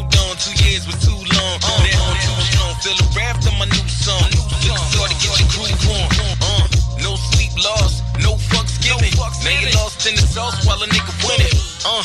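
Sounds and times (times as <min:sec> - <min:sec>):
deep bass line: 0:00.0 - 0:11.7
drum beat: 0:00.0 - 0:12.0
rapping over a beat: 0:00.0 - 0:12.0.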